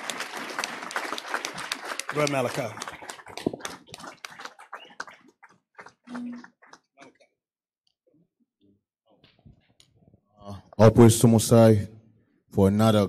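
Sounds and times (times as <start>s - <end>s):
small group clapping: 0.0s - 7.4s.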